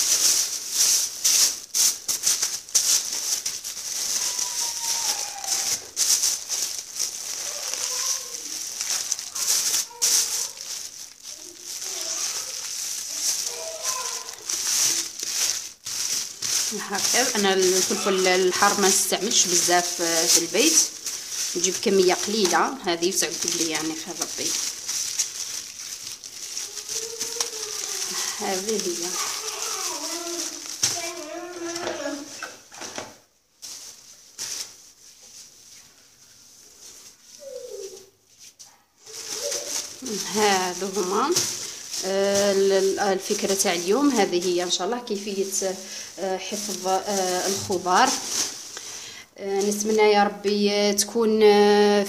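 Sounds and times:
plastic bags rustling: 0.0 - 52.0.

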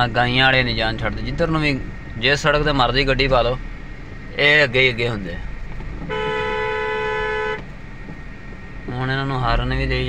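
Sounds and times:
low hum of moving car: 0.0 - 10.0
car horn held note: 6.1 - 7.7.

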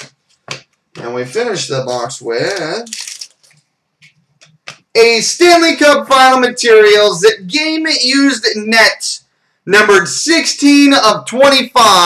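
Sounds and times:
clicks and rustles of plastic wrapper: 2.5 - 3.7.

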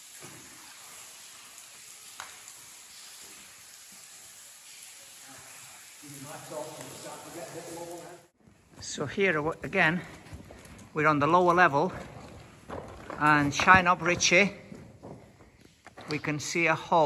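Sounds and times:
steady hiss: 0.0 - 8.4.

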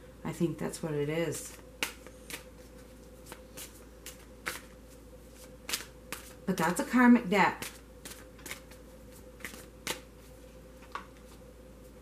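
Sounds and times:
cards rustling and clicking: 1.5 - 4.7, 9.4 - 10.1.

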